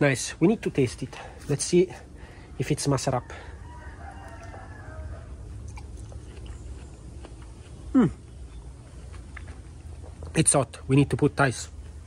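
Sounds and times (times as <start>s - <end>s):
chewing watermelon: 4.0s - 10.1s.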